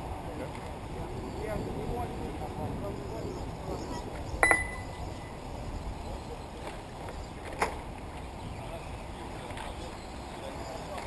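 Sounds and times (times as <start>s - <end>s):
sharp metallic clink: 4.4s - 5.0s.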